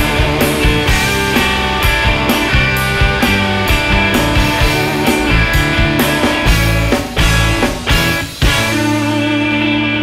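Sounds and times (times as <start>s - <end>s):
rock band playing live: 0.0s - 10.0s
guitar chord ringing: 0.2s - 10.0s
drum hit: 2.4s - 8.8s.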